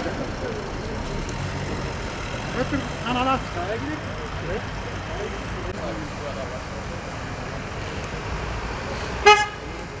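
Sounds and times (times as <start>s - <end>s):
street noise: 0.0s - 10.0s
vehicle horn toot: 9.2s - 9.6s.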